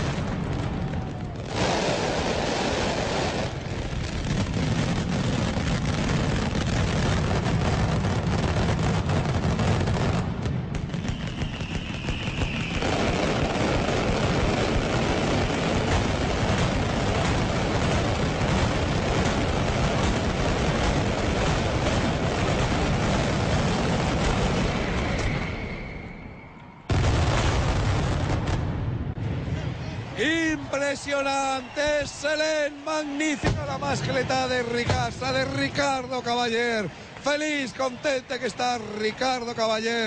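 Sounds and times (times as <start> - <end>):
firecracker explosions: 0.0 - 40.0.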